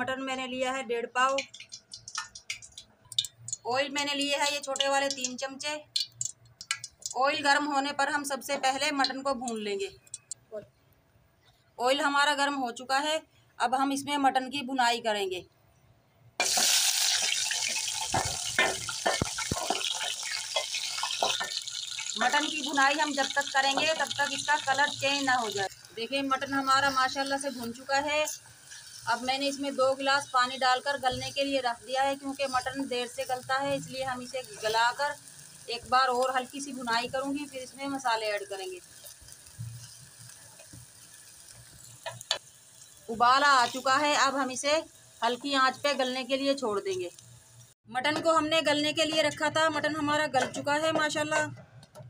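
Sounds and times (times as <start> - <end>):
water bubbling in a pot: 1.4 - 3.7, 16.6 - 46.5
meat sizzling in hot oil: 1.4 - 9.3, 16.4 - 47.8
metal ladle stirring: 16.4 - 22.4
spoon scraping metal pot: 17.7 - 22.2.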